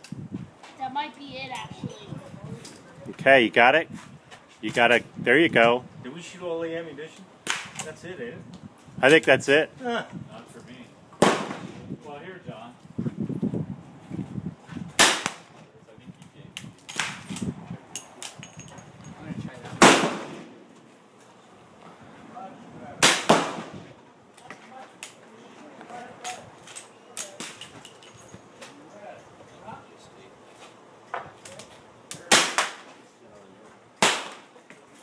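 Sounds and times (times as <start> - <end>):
rifle gunshot: 11.2 - 11.9, 19.8 - 20.6, 23.0 - 23.8, 34.0 - 34.5
faint sharp cracks and clicks: 24.3 - 25.2, 31.4 - 32.9.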